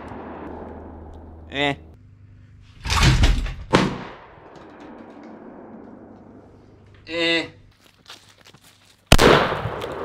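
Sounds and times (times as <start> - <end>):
shotgun shot with echo: 9.1 - 10.0.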